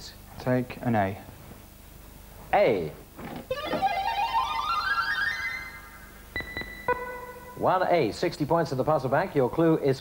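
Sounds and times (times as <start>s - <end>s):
rising synthesizer notes: 3.5s - 7.8s.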